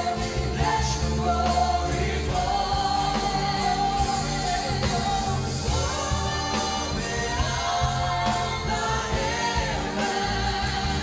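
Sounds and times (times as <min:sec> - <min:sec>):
instrumental accompaniment with bass: 0:00.0 - 0:11.0
voices singing together: 0:00.0 - 0:11.0.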